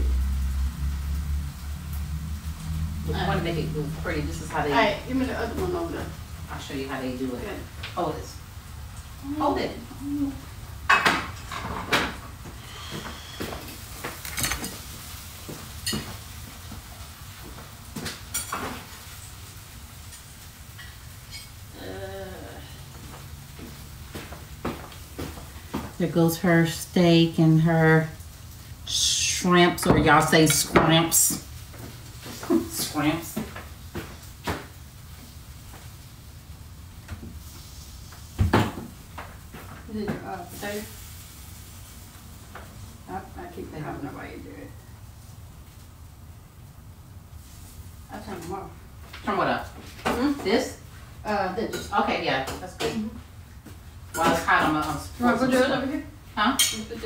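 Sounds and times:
low room hum: 0:00.0 - 0:57.0
dishes and cutlery clinking: 0:14.1 - 0:15.0, 0:15.7 - 0:16.2, 0:18.3 - 0:18.9, 0:56.6 - 0:57.0.

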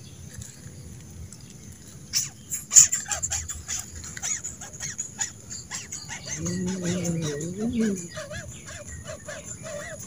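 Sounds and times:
small birds chirping: 0:00.0 - 0:10.0
high-pitched insect drone: 0:04.3 - 0:10.0.

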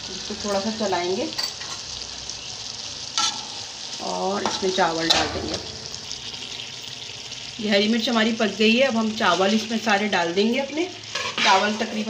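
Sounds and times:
food sizzling in a metal pot: 0:00.0 - 0:12.0.

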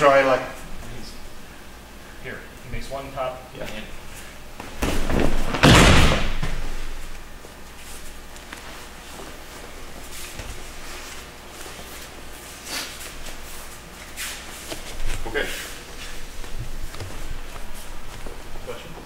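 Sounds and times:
bodies thudding on mat: 0:04.6 - 0:07.1.

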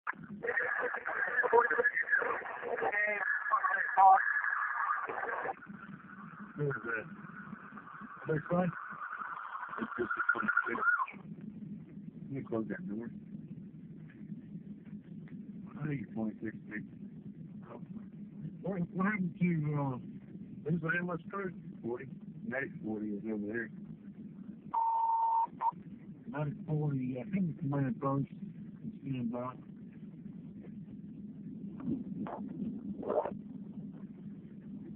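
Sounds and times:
indistinct voices talking: 0:00.4 - 0:11.3
two-way radio alert beep: 0:09.2 - 0:11.2.

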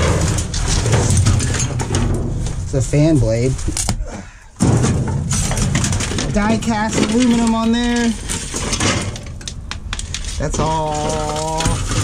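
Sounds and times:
trash clattering and rustling: 0:00.0 - 0:04.0, 0:04.6 - 0:12.0
thud in dumpster: 0:04.6 - 0:06.2.

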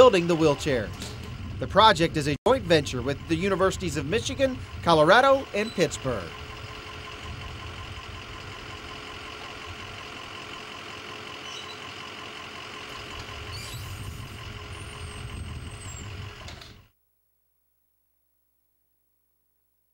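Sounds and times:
bus idling: 0:00.0 - 0:16.9
wheelchair lift motor running: 0:03.1 - 0:16.9.

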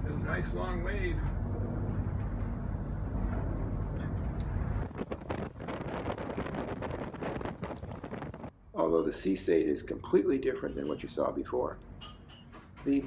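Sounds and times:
engine and hull rumble: 0:00.0 - 0:08.7
rushing wind: 0:03.1 - 0:08.6
wind buffeting microphone: 0:03.2 - 0:08.5.

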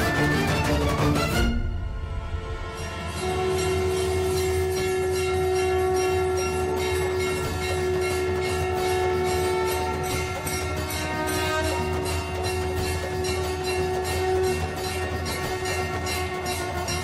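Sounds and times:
steady low drone: 0:00.0 - 0:15.8
soft rhythmic percussion: 0:00.0 - 0:17.0
long horn-like note: 0:01.3 - 0:12.6.

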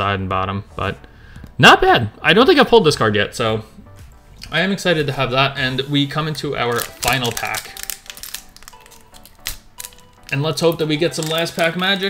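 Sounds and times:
foil wrapper crinkling: 0:05.7 - 0:12.0.

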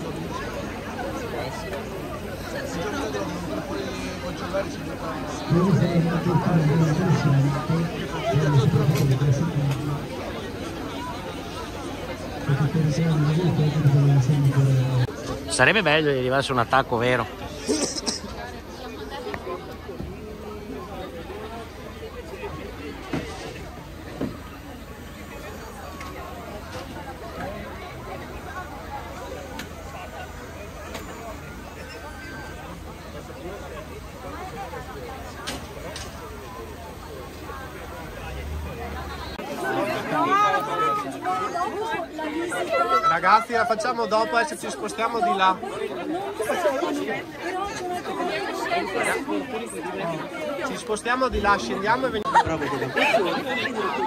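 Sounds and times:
people talking in background: 0:00.0 - 0:54.0
teenagers chattering: 0:00.0 - 0:54.0.

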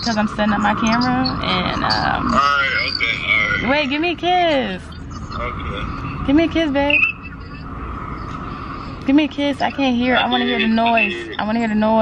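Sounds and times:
airport terminal rumble and hiss: 0:00.0 - 0:12.0.

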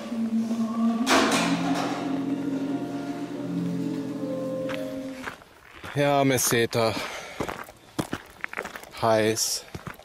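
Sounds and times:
footsteps on gravel: 0:04.6 - 0:10.0.

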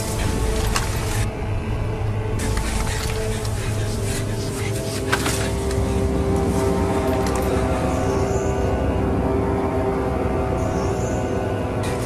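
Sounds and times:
droning suspense music: 0:00.0 - 0:12.0.

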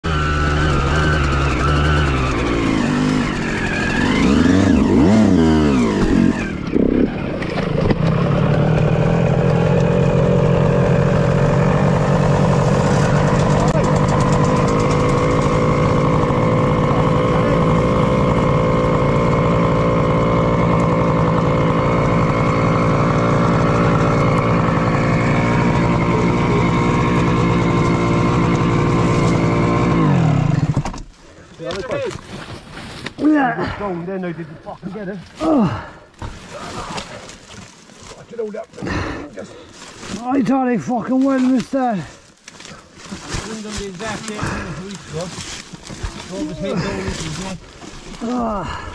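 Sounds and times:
dirt bike engine revving: 0:00.0 - 0:30.8, 0:43.4 - 0:48.9.

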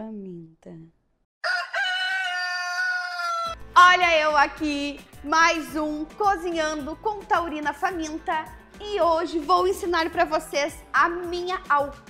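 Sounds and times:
rooster crowing: 0:01.4 - 0:03.6.

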